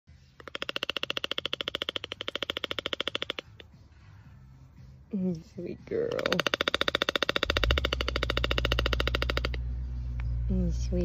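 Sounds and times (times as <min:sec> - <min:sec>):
toucan rattling call: 0:00.2 - 0:03.8, 0:05.8 - 0:09.7.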